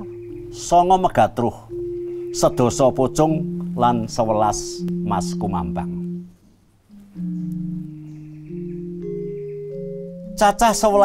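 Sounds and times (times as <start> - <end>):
gamelan metallophone notes ringing: 0.0 - 6.3, 6.9 - 11.0.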